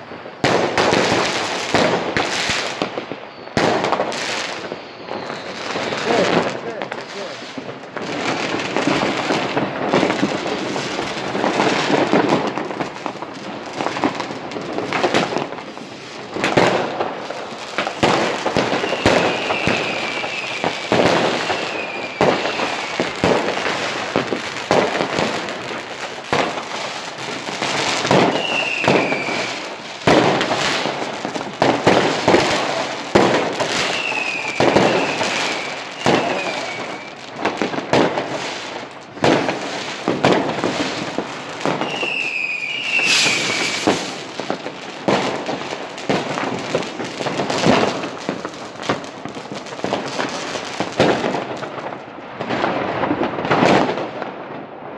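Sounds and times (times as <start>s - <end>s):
fireworks bangs and crackles: 0.0s - 54.9s.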